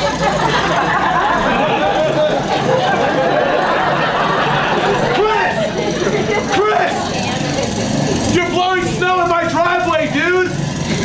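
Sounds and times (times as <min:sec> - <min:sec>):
snowblower engine running: 0:00.0 - 0:11.0
man shouting: 0:05.1 - 0:05.7, 0:06.5 - 0:07.0.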